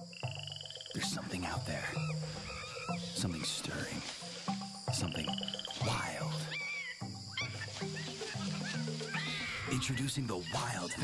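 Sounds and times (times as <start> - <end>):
chirping animal calls: 0.0 - 4.4, 5.0 - 11.0.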